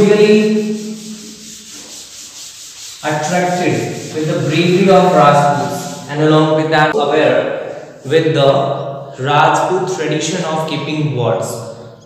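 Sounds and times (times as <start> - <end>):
duster rubbing chalkboard: 0.0 - 6.5.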